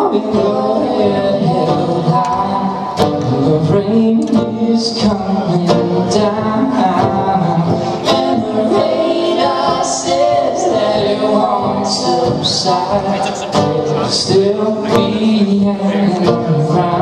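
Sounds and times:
acoustic guitar strumming: 0.0 - 17.0
man and woman singing: 0.0 - 17.0.

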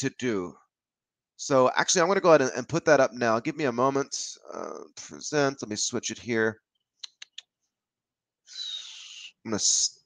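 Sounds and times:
computer mouse clicks: 7.0 - 7.5.

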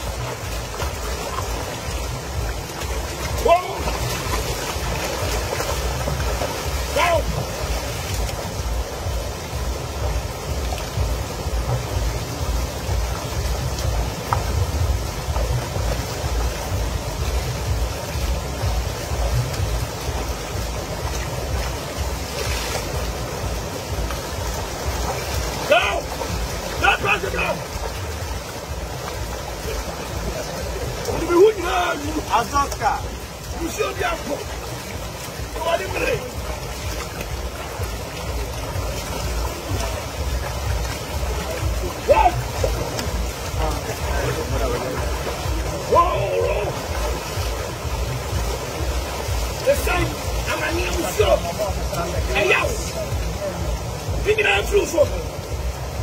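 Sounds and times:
bodies moving in water: 0.0 - 12.1, 18.2 - 53.1
water rushing over waterfall: 0.0 - 56.0.

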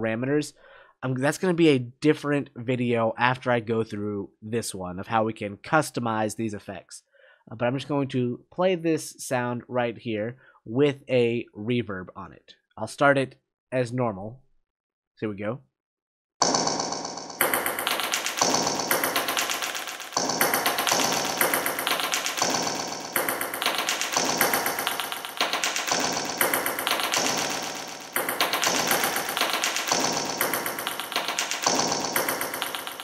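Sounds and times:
sharp percussive strikes: 16.4 - 33.0.

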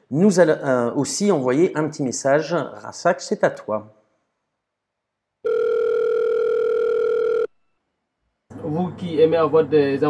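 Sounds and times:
telephone call tone beep: 5.4 - 7.8.

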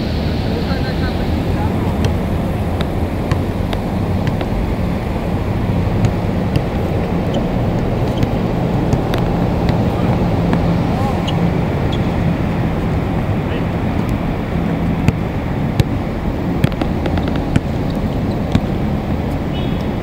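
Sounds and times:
steady low hum: 0.0 - 20.0
wind rumbling on microphone: 0.0 - 20.0
basketball bouncing on concrete: 1.7 - 12.2, 14.8 - 19.9.

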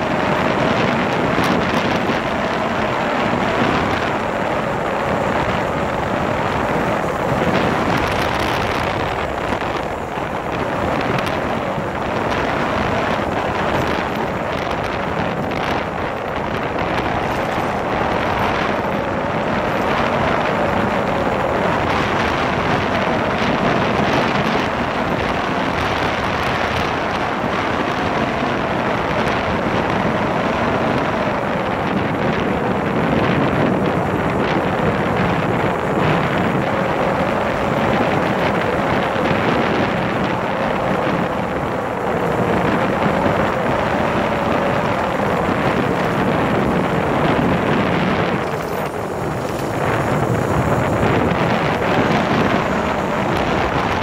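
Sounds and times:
motorcycle engine running: 0.0 - 54.0
wind noise on microphone: 0.0 - 54.0.

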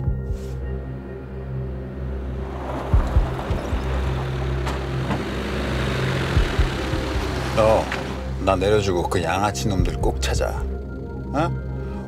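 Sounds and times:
background music with low tones: 0.0 - 12.0
van driving up: 0.7 - 9.2.

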